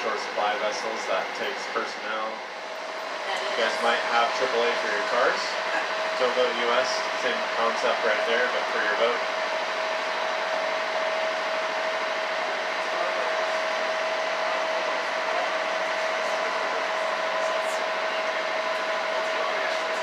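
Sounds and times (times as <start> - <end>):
boat engine droning: 0.0 - 20.0.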